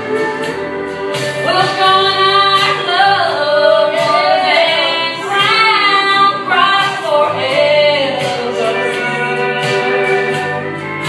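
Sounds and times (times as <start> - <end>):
held accompaniment notes: 0.0 - 11.0
women singing gospel song: 0.0 - 11.0.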